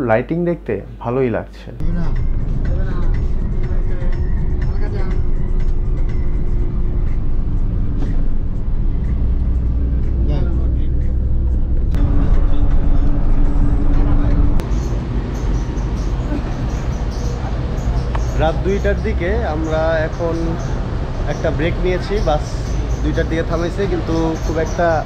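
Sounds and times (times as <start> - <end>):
coach engine drone: 1.8 - 25.0
road rumble: 2.0 - 25.0.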